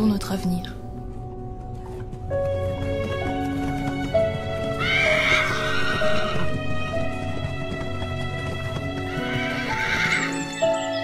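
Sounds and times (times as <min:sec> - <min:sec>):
film score music: 0:00.0 - 0:11.0
horse whinnying: 0:04.7 - 0:06.7, 0:09.0 - 0:11.0.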